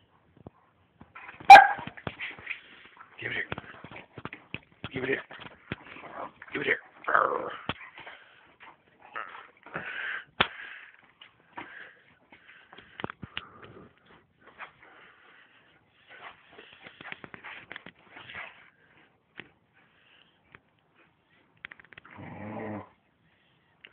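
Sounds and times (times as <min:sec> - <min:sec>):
dogs playing: 0:00.1 - 0:23.0.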